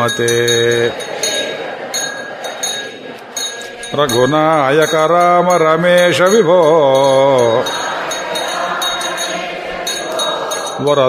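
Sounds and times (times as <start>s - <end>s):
small jingling bells: 0.0s - 11.0s.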